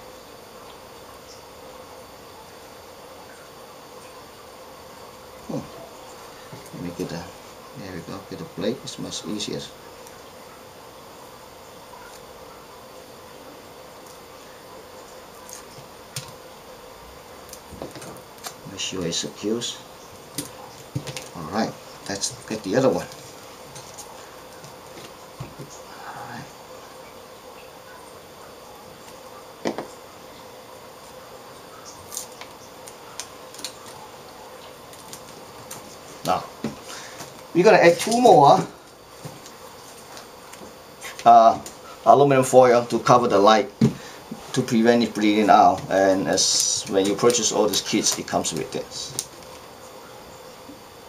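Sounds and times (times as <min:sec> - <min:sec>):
room tone hum: 0:00.0 - 0:51.0
scratchy tape rustles: 0:20.0 - 0:26.0, 0:31.0 - 0:42.1, 0:43.8 - 0:49.8.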